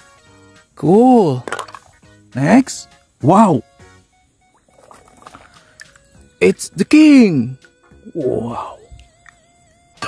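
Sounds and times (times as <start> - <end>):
water noise: 1.4 - 2.1, 4.4 - 6.2.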